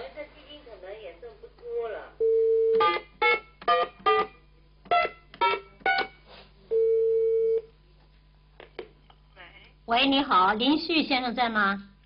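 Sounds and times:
short keypad beeps: 5.0 - 6.2.

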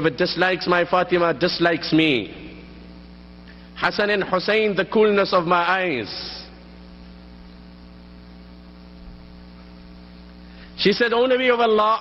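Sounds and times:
man's voice: 0.0 - 2.6, 3.8 - 6.6, 10.8 - 12.0
electrical mains hum: 0.0 - 12.0
faint hiss: 0.2 - 11.3.

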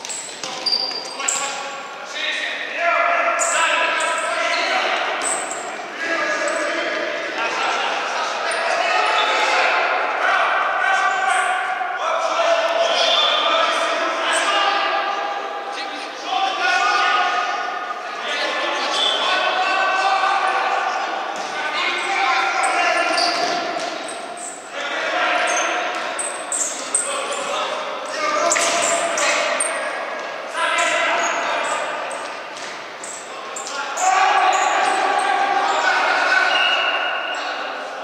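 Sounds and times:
players shouting: 2.2 - 32.2, 33.1 - 38.0.

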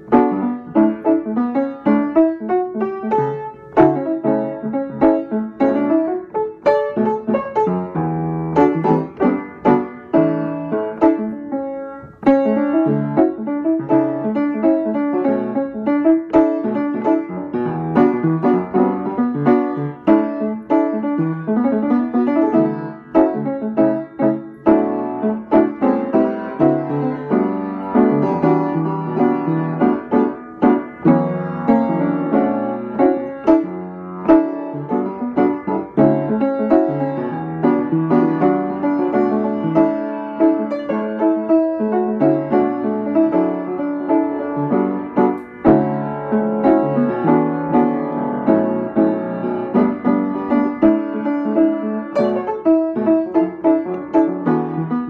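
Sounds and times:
solo jazz piano: 0.0 - 55.0.

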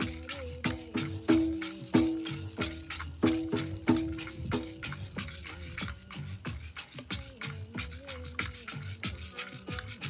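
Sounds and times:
hand drum beat: 0.0 - 10.0
stick rattle: 0.0 - 10.0.

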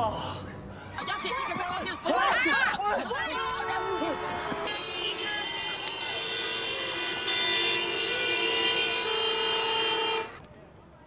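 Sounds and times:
car horns honking: 3.3 - 10.4.

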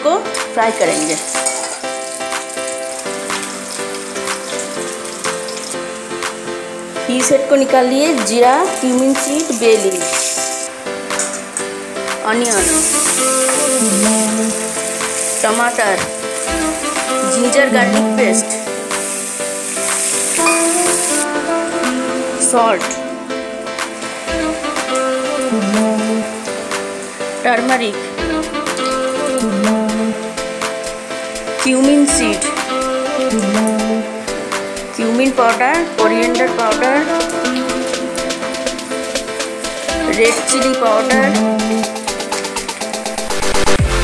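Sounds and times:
background music with light beat: 0.0 - 44.0
fish sizzling in hot oil: 0.7 - 21.9, 23.8 - 29.4, 36.4 - 43.8.

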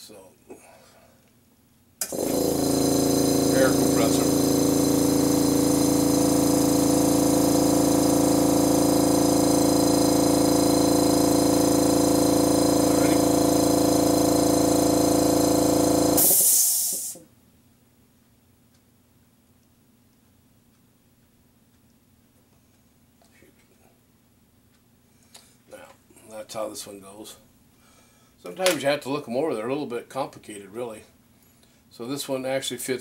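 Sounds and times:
air compressor humming: 2.0 - 17.3
air release hiss: 16.2 - 17.2.

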